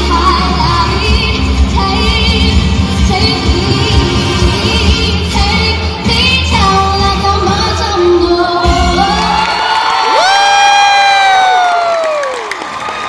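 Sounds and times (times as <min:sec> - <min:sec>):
girl singing over pop music: 0:00.0 - 0:09.7
crowd cheering: 0:09.0 - 0:13.0.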